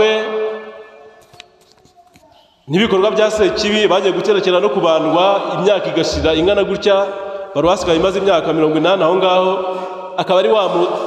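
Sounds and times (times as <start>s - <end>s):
man speaking: 2.7s - 11.0s.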